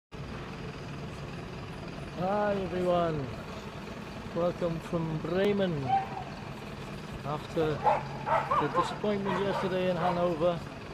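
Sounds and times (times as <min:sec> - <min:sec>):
engine idling hum: 0:00.1 - 0:10.9
street traffic noise: 0:00.1 - 0:10.9.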